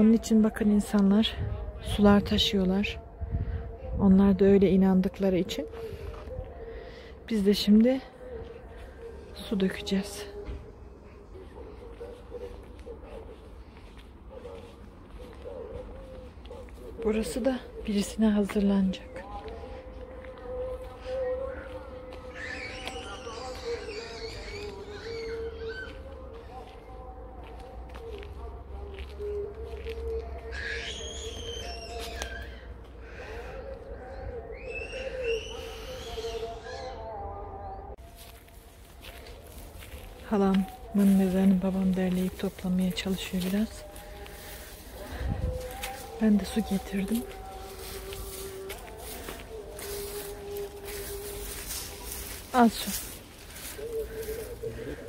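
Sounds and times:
recitation chant over loudspeakers: 0.0s - 55.0s
footsteps in dry grass: 4.8s - 36.9s, 38.0s - 55.0s
birds chirping: 19.2s - 27.1s, 30.3s - 38.0s.

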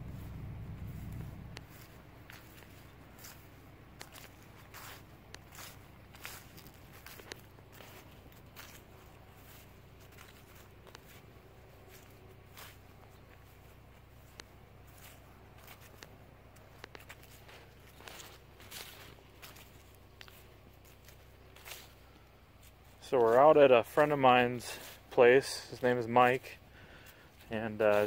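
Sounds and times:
low rumble: 0.0s - 22.6s
footsteps on grass: 0.0s - 28.0s.

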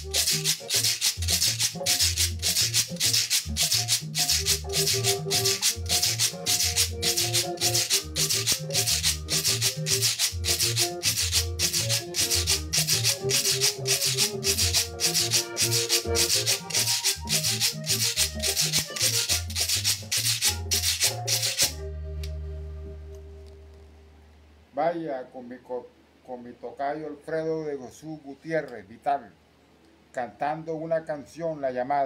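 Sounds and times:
scraper rhythm: 0.0s - 21.8s
accordion melody: 0.0s - 24.1s
bass line: 4.4s - 19.7s, 20.5s - 24.3s
low held note: 21.8s - 24.4s.

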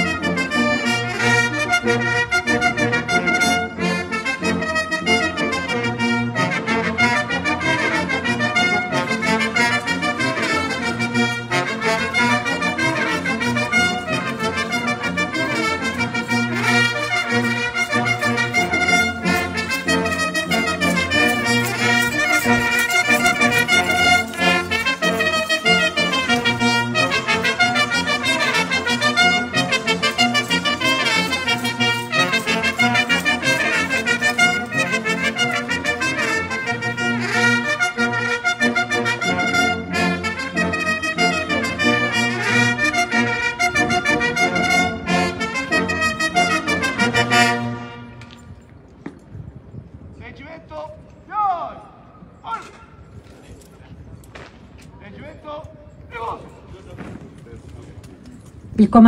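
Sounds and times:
military brass band playing: 0.0s - 48.6s.

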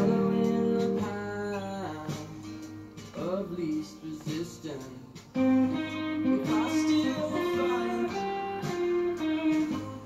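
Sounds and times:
electric guitar lead: 0.0s - 3.0s, 5.3s - 10.0s
recorded pop song: 0.0s - 10.0s.

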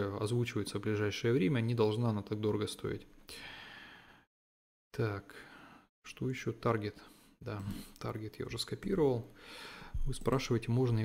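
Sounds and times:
man breathing into microphone: 9.4s - 10.0s.

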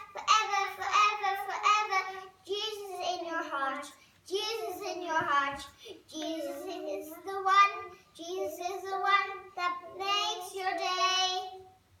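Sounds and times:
young girls singing unaccompanied: 0.0s - 12.0s.

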